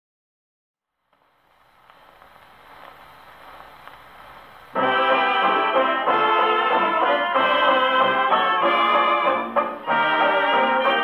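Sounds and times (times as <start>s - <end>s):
gramophone needle hiss: 0.8s - 11.0s
faint record clicks: 1.0s - 4.8s.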